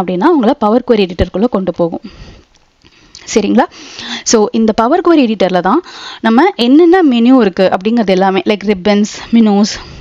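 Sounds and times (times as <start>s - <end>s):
woman speaking: 0.0s - 2.2s, 3.2s - 10.0s.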